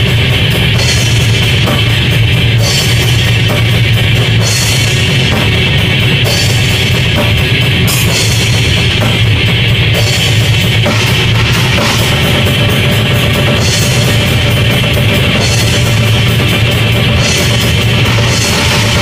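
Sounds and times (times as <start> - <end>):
cymbal crashes: 0.0 - 19.0
distorted electric guitar: 0.0 - 19.0
fast drumming: 0.0 - 19.0.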